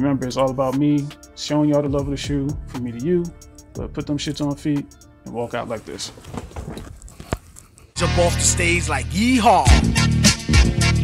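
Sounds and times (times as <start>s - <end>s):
shuffling footsteps in sneakers: 5.6s - 7.9s.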